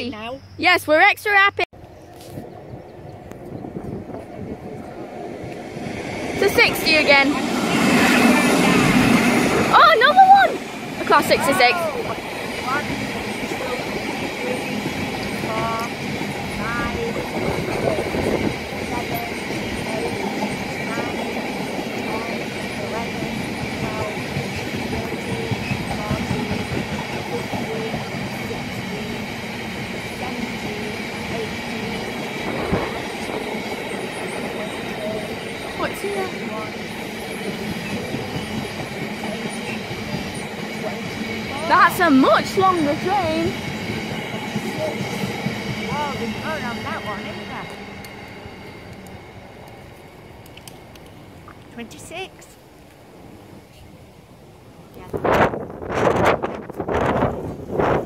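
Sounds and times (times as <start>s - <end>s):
freight train wheels rumbling on rails: 0.6s - 58.0s.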